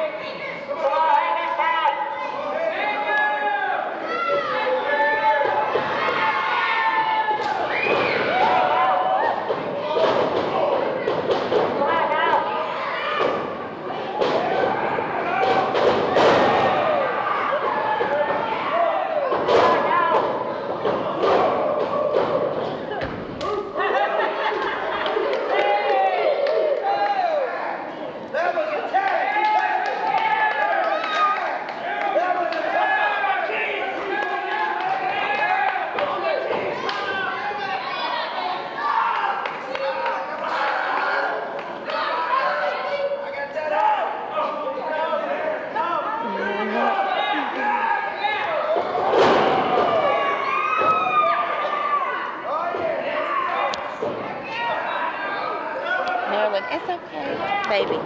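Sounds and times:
crowd shouting: 0.0s - 57.9s.

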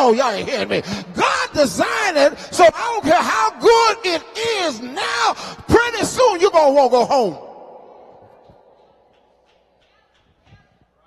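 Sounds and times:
man's voice reverberating through pa: 0.0s - 9.0s.

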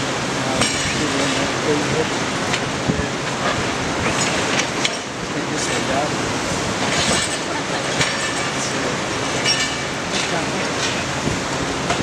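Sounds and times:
demolition crusher grinding concrete: 0.0s - 12.0s.

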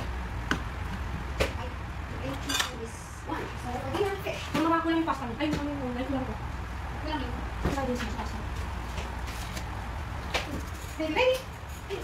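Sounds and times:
kitchenware clinking: 2.3s - 2.9s.

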